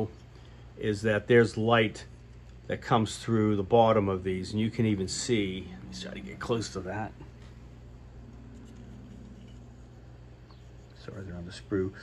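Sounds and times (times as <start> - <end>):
low hum: 2.0 - 12.0.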